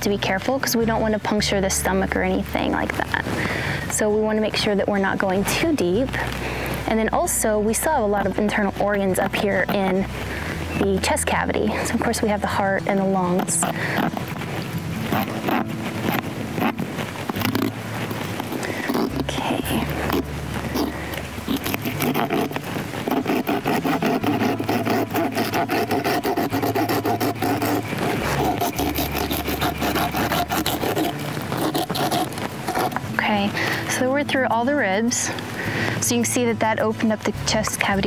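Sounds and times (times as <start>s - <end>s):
bone saw rasping on bone: 7.8s - 11.2s, 13.2s - 33.0s.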